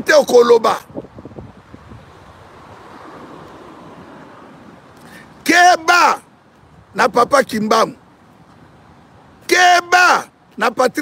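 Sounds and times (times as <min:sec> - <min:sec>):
wind buffeting microphone: 0:00.0 - 0:04.9.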